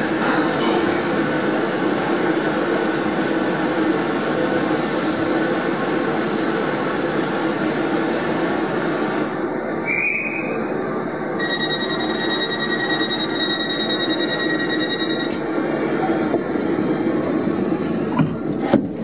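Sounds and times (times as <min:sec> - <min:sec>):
train running noise: 0:00.0 - 0:19.0.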